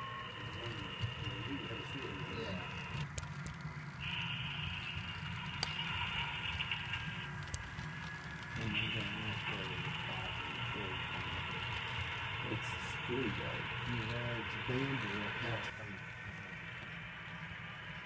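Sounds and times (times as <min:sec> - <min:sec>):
faint voices talking: 0:00.0 - 0:03.0, 0:08.6 - 0:11.8, 0:12.4 - 0:16.1
high whine: 0:00.0 - 0:18.0
model locomotive engine rumble: 0:00.0 - 0:18.0.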